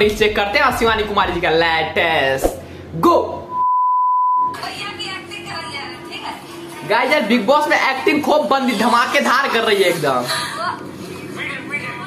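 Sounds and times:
electronic beep: 3.4s - 4.5s.

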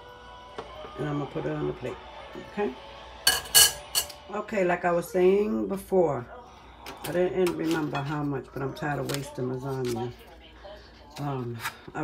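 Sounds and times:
metal spatula clattering: 3.3s - 4.2s.

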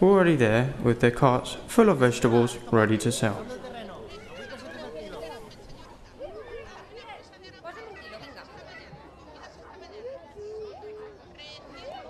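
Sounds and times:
overlapping market chatter: 0.6s - 12.0s.

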